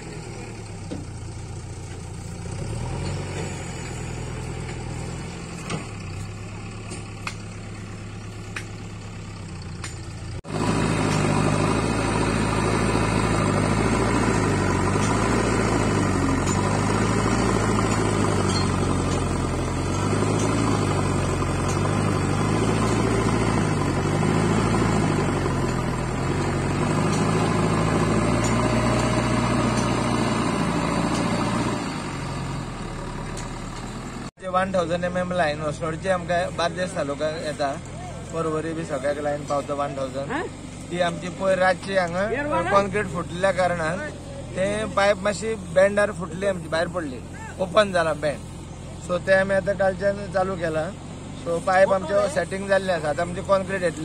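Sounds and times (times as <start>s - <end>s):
backhoe diesel engine running: 0.0s - 54.0s.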